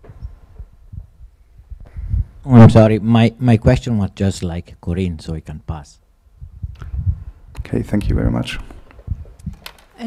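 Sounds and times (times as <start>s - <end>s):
microphone handling thumps: 0.0s - 2.8s, 6.4s - 9.8s.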